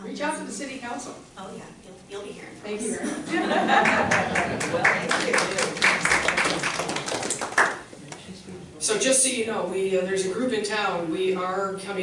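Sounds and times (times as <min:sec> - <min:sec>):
small audience clapping: 0:03.8 - 0:08.3.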